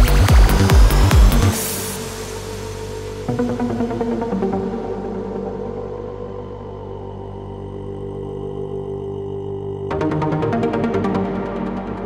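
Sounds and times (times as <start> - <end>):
steady low drone: 0.0 - 12.0
sustained synth chords: 0.0 - 12.0.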